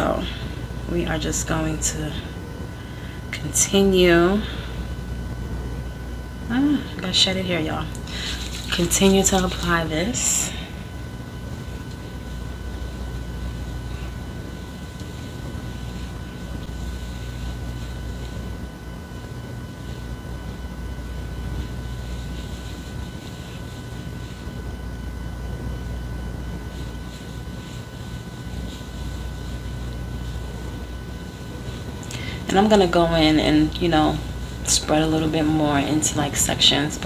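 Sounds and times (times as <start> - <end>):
ventilation unit humming: 0.0 - 37.0
hands rustling through hair: 8.0 - 10.1.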